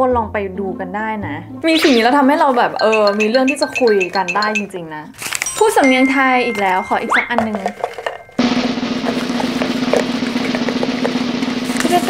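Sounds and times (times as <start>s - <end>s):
drum roll: 7.8s - 12.0s.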